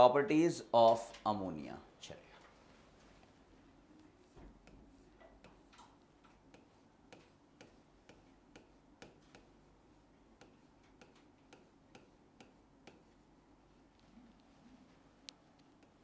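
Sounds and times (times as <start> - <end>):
marker scratchy strokes: 4.0 - 5.7, 6.4 - 13.4
marker clicking on writing board: 4.2 - 13.2, 15.6 - 16.0.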